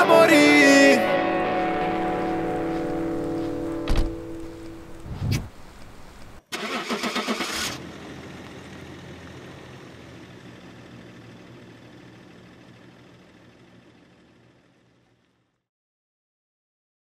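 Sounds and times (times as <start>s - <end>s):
car engine starting and idling: 0.0s - 15.5s.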